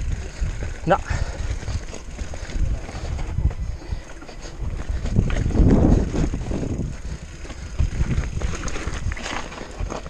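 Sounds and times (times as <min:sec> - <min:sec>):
mountain bike rattling over rock: 0:00.0 - 0:10.0
wind rumble on microphone: 0:00.0 - 0:10.0.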